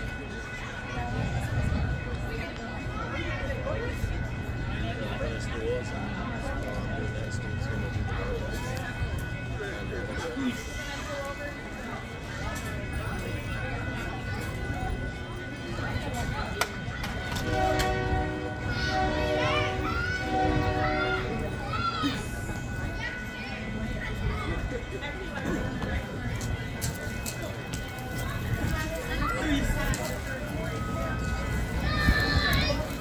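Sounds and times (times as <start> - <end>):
crowd voices with children: 0.0 - 33.0
low rumble of train cars: 0.0 - 33.0
train horn chord: 17.3 - 21.5.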